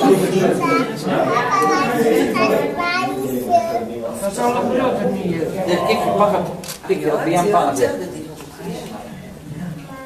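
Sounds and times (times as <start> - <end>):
children chattering: 0.0 - 8.0, 8.6 - 10.0.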